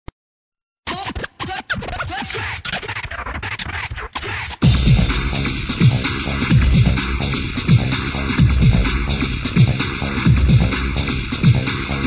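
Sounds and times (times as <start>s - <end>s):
turntable scratching: 0.9s - 12.0s.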